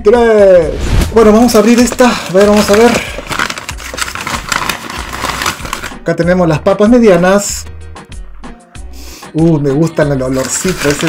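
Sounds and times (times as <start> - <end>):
paper bag crinkling: 1.2 - 6.0, 10.2 - 11.0.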